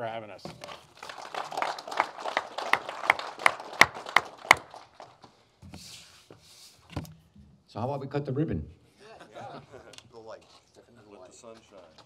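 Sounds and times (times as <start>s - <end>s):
loud close hand clapping: 0.6s - 5.3s
small group applauding: 0.6s - 5.4s.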